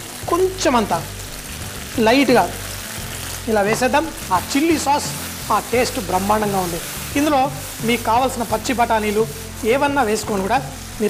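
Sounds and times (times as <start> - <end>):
food sizzling in a wok: 0.0 - 11.0.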